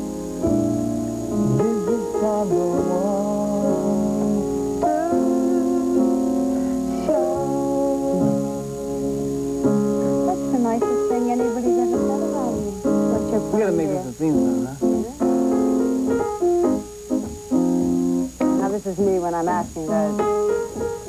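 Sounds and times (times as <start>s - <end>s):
grand piano playing: 0.0s - 21.0s
person singing: 1.4s - 8.9s.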